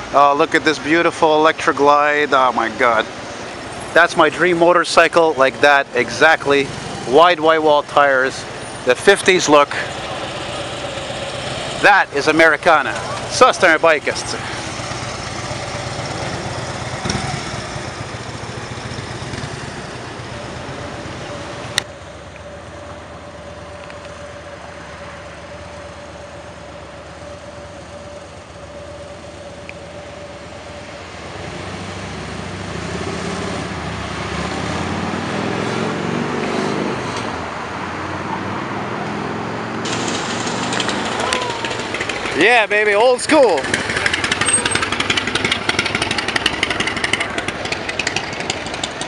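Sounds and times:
motorcycle engines idling and pulling away: 0:00.0 - 0:49.0
street traffic: 0:00.0 - 0:49.0.

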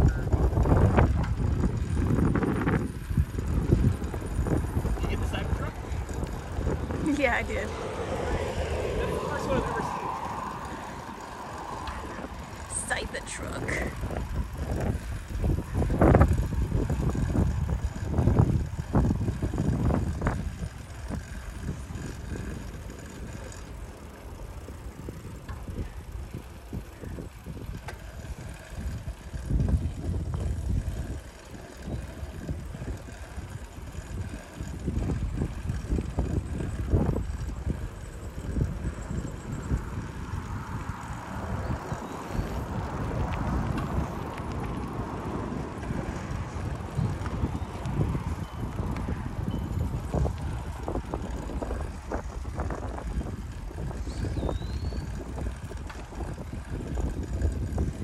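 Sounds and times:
bicycle tyre and road noise: 0:00.0 - 0:58.0
wind buffeting microphone: 0:00.0 - 0:58.0.

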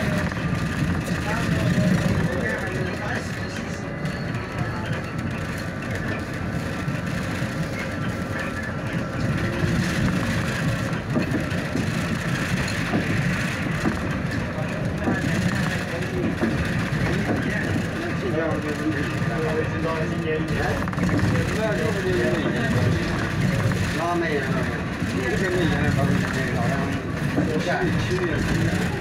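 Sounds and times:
bus running and road noise: 0:00.0 - 0:29.0.

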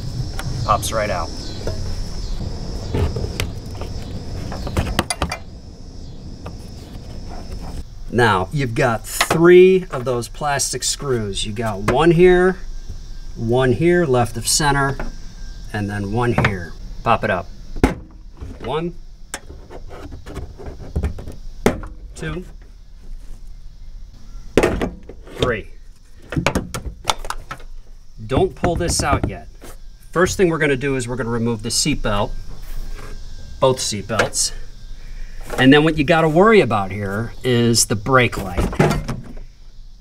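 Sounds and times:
rustling and rubbing: 0:06.4 - 0:07.9, 0:19.4 - 0:21.5, 0:22.4 - 0:23.7
low thump: 0:17.8 - 0:18.7.

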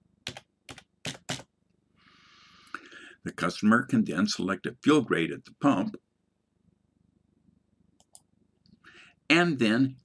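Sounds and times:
keyboard keystrokes: 0:00.3 - 0:01.4.

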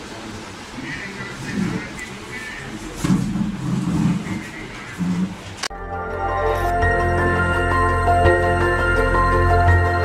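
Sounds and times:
indistinct people talking: 0:00.0 - 0:05.7
muffled room noise: 0:00.0 - 0:05.7.

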